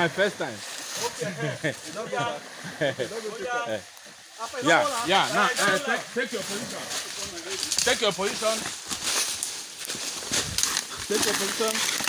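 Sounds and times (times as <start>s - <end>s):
footsteps in undergrowth: 0.0s - 2.7s, 3.3s - 12.0s
leaves and branches rustling: 0.0s - 12.0s
twigs crackling: 3.8s - 12.0s.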